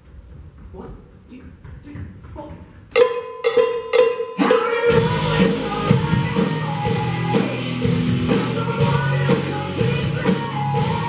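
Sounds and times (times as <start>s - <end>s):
ringing cowbell strikes: 3.0s - 4.6s
rock band playing: 3.0s - 11.0s.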